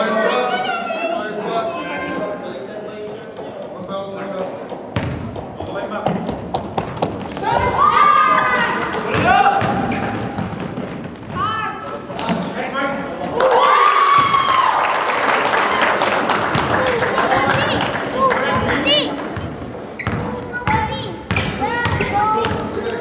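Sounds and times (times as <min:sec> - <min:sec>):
basketball bouncing on wooden floor: 0:04.9 - 0:07.4, 0:09.1 - 0:11.5, 0:19.4 - 0:22.7
sneaker squeaks on floor: 0:09.1 - 0:12.5, 0:19.4 - 0:23.0.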